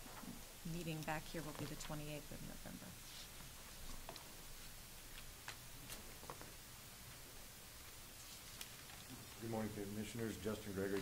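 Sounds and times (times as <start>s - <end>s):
footsteps across a room: 3.0s - 9.6s.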